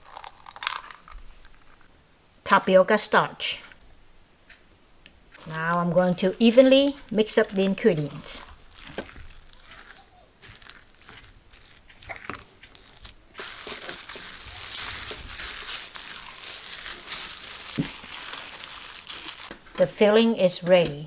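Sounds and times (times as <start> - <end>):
plastic glove crinkling: 0.0 - 1.9, 5.3 - 19.6
spatula stirring in a glass bowl: 5.4 - 16.8
hand kneading filling: 5.4 - 19.5.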